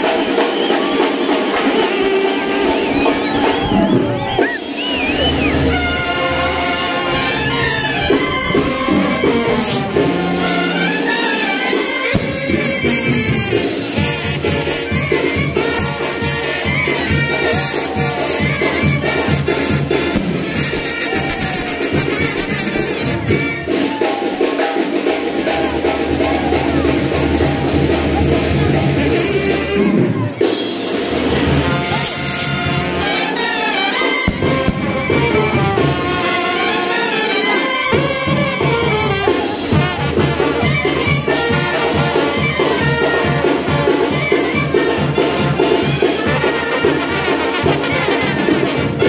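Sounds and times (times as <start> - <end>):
loud brass band music: 0.0 - 49.0.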